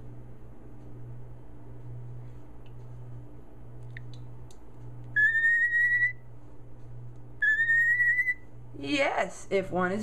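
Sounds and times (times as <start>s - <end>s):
cockatiel whistling: 5.2s - 6.2s, 7.4s - 8.4s.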